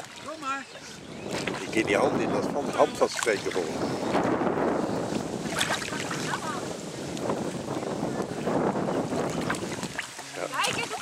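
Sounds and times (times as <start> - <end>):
water sloshing and lapping: 0.0 - 11.0
wind buffeting microphone: 0.0 - 11.0.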